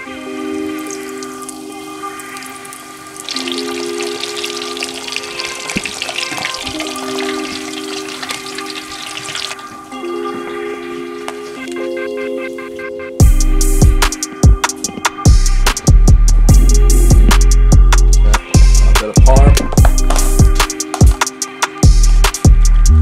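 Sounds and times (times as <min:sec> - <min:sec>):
music: 0:00.0 - 0:23.0
food frying in hot oil: 0:00.8 - 0:09.6.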